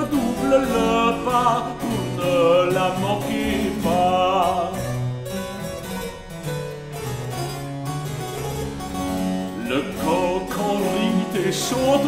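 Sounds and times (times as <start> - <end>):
person singing: 0.0 - 5.0, 9.6 - 12.0
harpsichord: 0.0 - 12.0.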